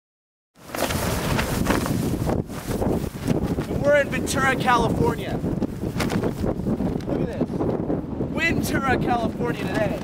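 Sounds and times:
wind blowing across microphone: 0.6 - 10.0.

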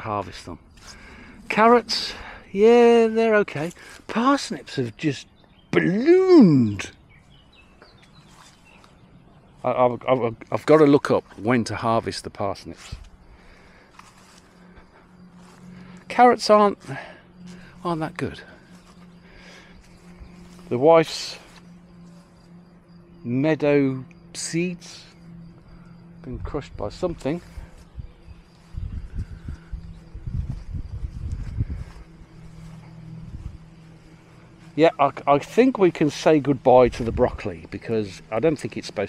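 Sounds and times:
faint low hum: 0.0 - 39.0
wind buffeting microphone: 26.3 - 33.8.

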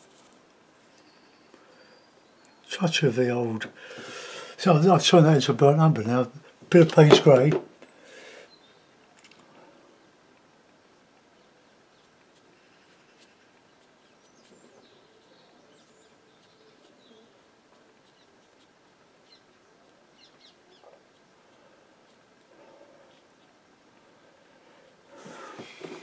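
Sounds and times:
faint chirps: 11.4 - 26.0.

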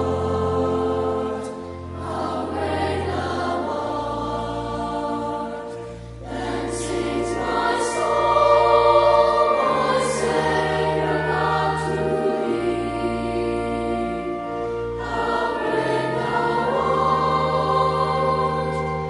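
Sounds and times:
choir singing: 0.0 - 19.0
held low accompaniment: 0.0 - 19.0.

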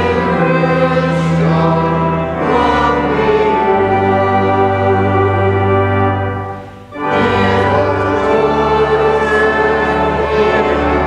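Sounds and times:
organ chords: 0.0 - 11.0
voices singing a hymn: 0.0 - 11.0.

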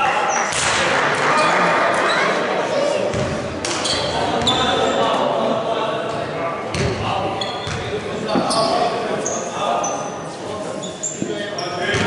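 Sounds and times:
voices echoing in gym: 0.0 - 12.0.

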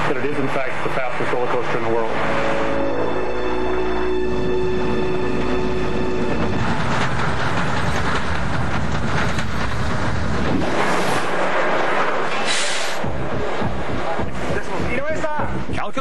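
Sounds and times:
roller coaster wheels on rails: 0.0 - 16.0
brief high hiss: 12.3 - 13.0.

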